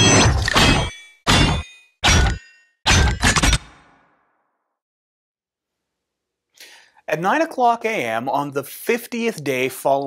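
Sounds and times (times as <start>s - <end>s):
metallic clangs: 0.0s - 4.0s.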